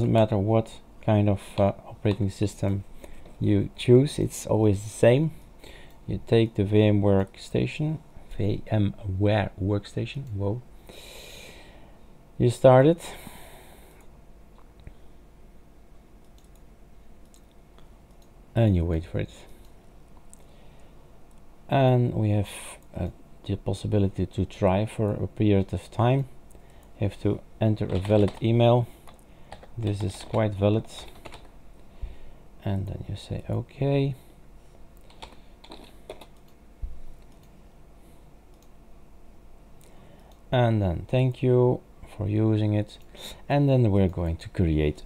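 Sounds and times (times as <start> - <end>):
low room hum: 0.0 - 45.0
keyboard typing: 27.8 - 31.5, 35.0 - 36.6
faint computer mouse clicks: 38.5 - 38.7.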